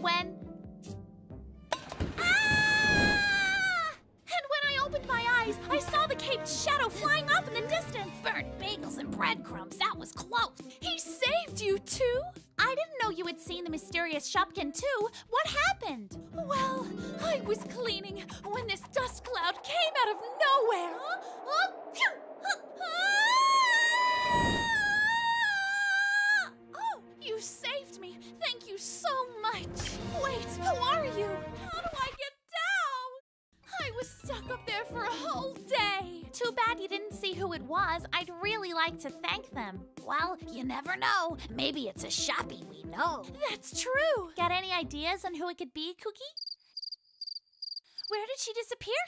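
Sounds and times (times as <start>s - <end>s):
girl's high-pitched scream: 2.2s - 4.0s, 19.5s - 27.0s
low whoosh: 18.0s - 25.0s
cricket chirping sound effect: 46.4s - 48.1s.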